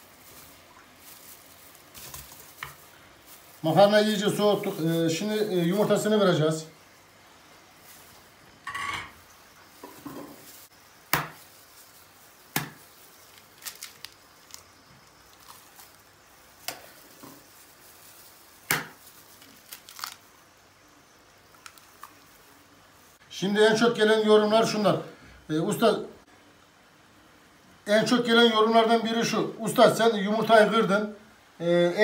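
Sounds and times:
plastic glove crinkling: 0.0 - 6.4, 7.6 - 8.4, 9.5 - 20.6, 21.4 - 23.2.

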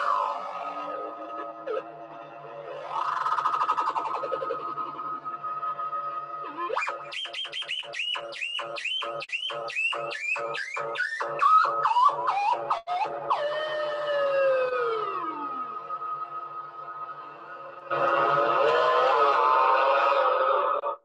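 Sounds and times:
synthesizer drone: 0.0 - 21.0
synthesizer chirping blips: 6.5 - 12.8.

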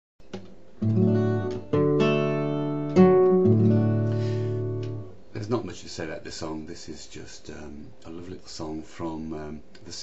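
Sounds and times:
fingerpicked acoustic guitar: 0.3 - 5.2.

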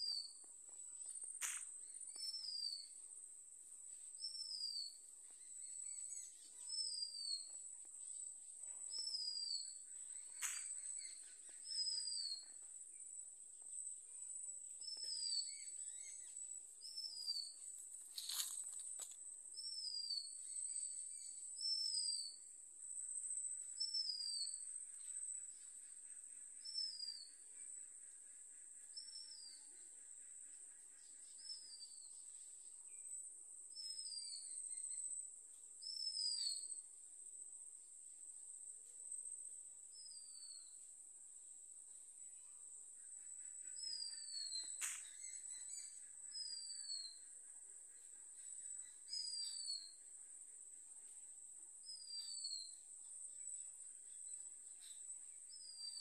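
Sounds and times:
high-pitched insect whine: 14.8 - 22.4, 42.4 - 50.0, 51.8 - 56.0.

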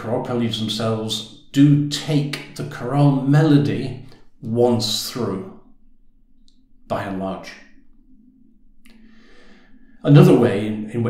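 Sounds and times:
person speaking: 0.0 - 5.7, 6.8 - 7.8, 10.0 - 11.0
low steady hum: 0.0 - 11.0
soft intake of breath: 8.9 - 10.0.

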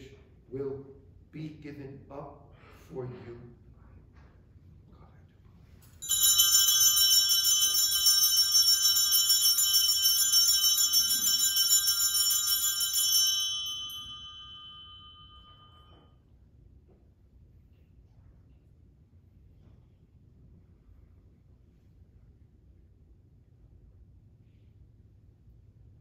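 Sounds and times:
small bells ringing: 5.8 - 16.2.

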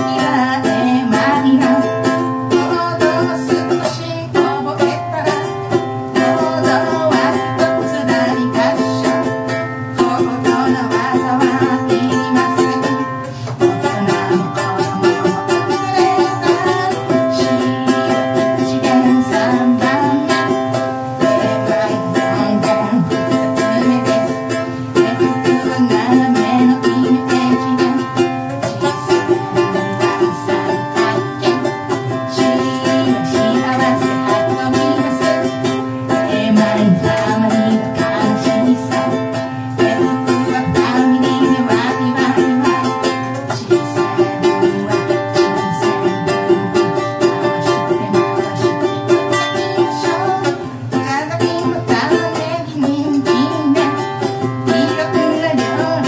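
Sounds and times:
ukulele strumming: 0.0 - 56.0
woman singing: 0.0 - 56.0.

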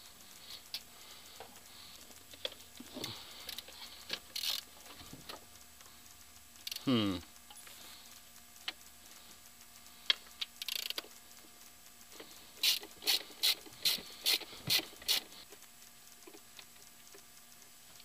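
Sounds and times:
socket ratchet clicking: 3.4 - 4.7, 6.6 - 6.9, 10.3 - 11.2, 12.6 - 15.3.

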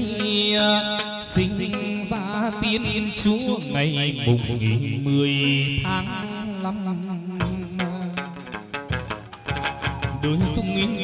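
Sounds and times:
chant-like singing with instruments: 9.5 - 11.0.

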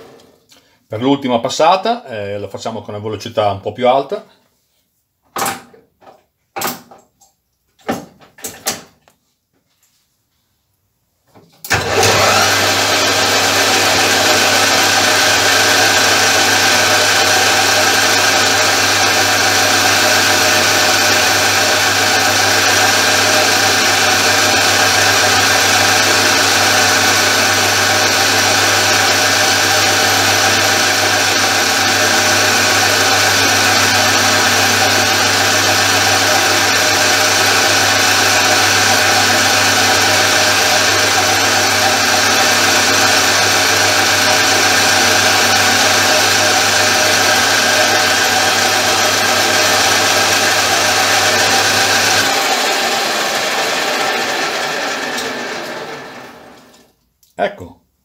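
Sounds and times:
lathe switching on: 11.7 - 56.9.

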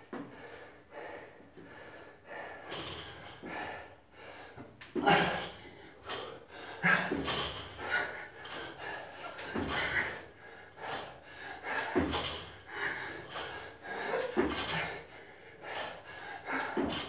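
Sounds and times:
man breathing heavily: 0.0 - 17.0
barbell plates rattling: 7.0 - 10.2, 11.8 - 15.0, 15.7 - 17.0.

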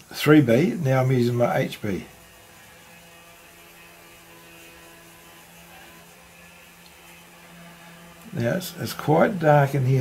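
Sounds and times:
faint hiss: 0.0 - 2.9
low electrical hum: 0.0 - 10.0.

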